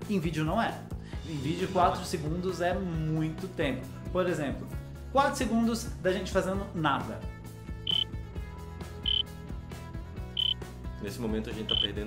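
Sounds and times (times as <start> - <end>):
soft background music: 0.0 - 9.3, 10.3 - 12.0.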